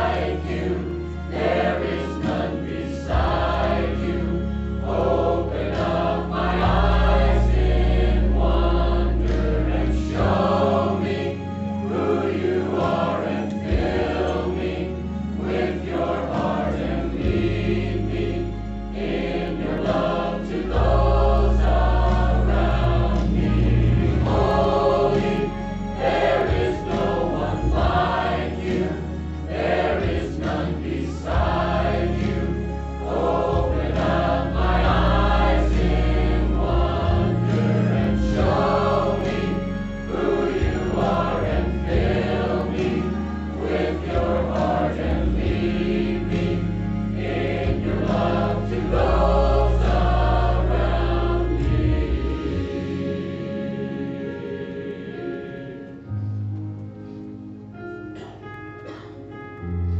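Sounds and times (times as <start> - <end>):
mixed choir singing: 0.0 - 56.4
instrumental accompaniment: 0.0 - 59.9.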